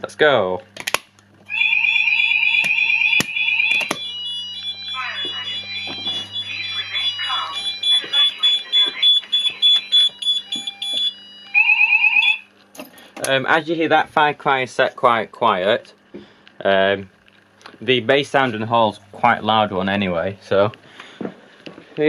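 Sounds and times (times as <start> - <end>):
fast-pulsing alarm tone: 1.5 - 12.5
high intermittent sounder tone: 2.6 - 12.5
recorded spoken message: 4.9 - 9.1, 17.8 - 20.8.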